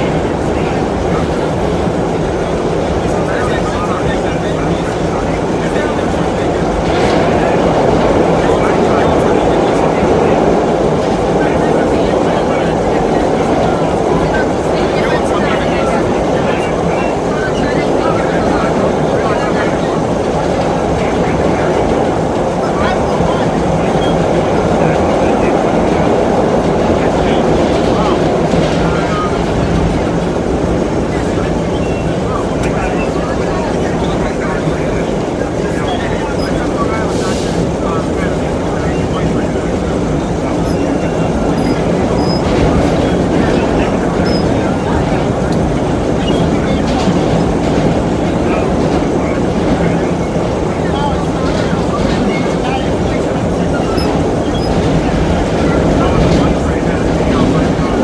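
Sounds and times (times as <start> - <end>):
subway car rumbling on rails: 0.0 - 58.0.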